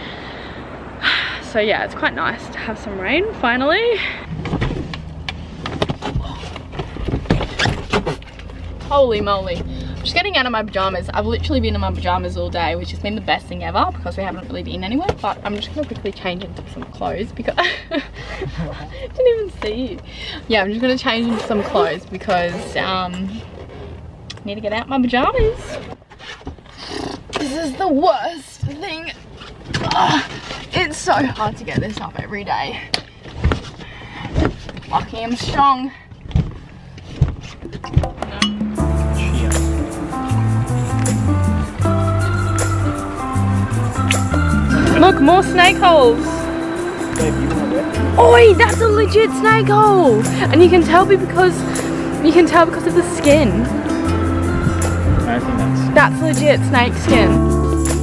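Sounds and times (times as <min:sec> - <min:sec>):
steady low hum: 0:38.5 - 0:58.0.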